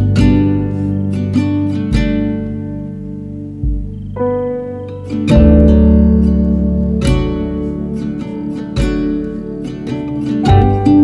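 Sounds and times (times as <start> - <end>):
acoustic guitar chords: 0.0 - 11.0.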